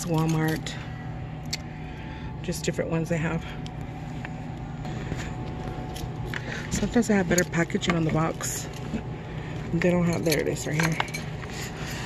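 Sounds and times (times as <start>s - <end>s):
woman speaking: 0.0s - 0.9s, 2.4s - 3.6s, 6.7s - 8.8s, 9.7s - 11.2s
shop background hum: 0.0s - 12.0s.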